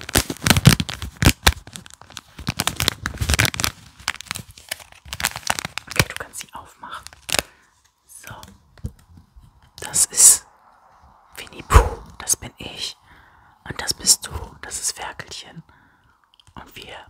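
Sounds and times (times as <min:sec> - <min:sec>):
close whispering: 0:06.0 - 0:07.2, 0:08.1 - 0:08.7, 0:09.7 - 0:17.0.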